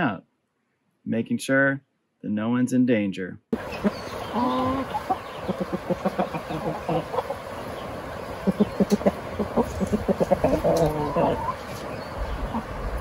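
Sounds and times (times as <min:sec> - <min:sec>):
chicken pitched call: 0:03.6 - 0:07.5, 0:08.4 - 0:11.8
chickens clucking: 0:03.6 - 0:13.0.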